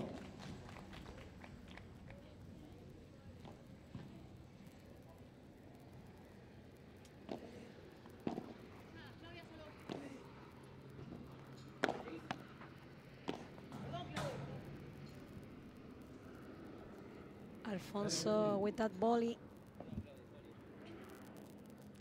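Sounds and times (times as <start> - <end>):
rackets hitting ball: 11.8 - 12.4, 13.2 - 14.6.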